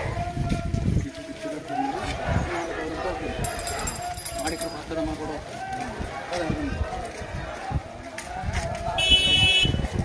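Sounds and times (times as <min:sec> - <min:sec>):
men calling out and talking: 0:00.0 - 0:10.0.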